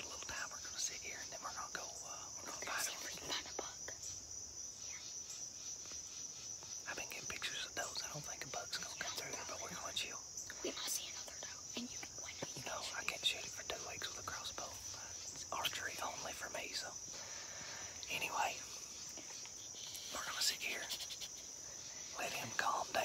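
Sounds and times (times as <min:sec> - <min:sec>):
people whispering: 0:00.0 - 0:04.0, 0:06.8 - 0:23.0
high-pitched insect chorus: 0:00.0 - 0:23.0.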